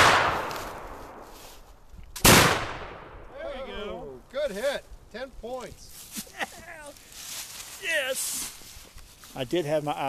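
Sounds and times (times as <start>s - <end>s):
rifle shot: 0.0s - 1.3s, 2.2s - 3.2s.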